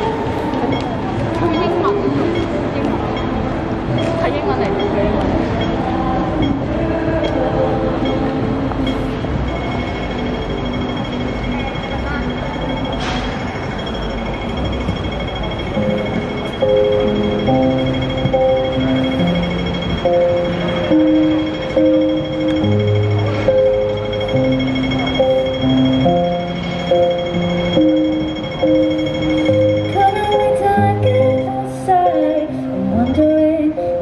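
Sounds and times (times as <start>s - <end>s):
passers-by talking: 0.0s - 34.0s
backing track with slow held chords: 14.4s - 34.0s.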